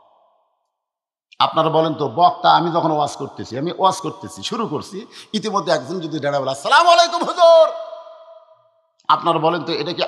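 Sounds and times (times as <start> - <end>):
man speaking: 1.4 - 7.8, 9.1 - 10.0.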